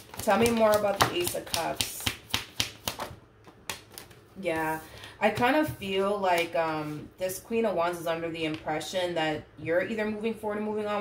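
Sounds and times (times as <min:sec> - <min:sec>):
cards being shuffled: 0:00.0 - 0:05.5.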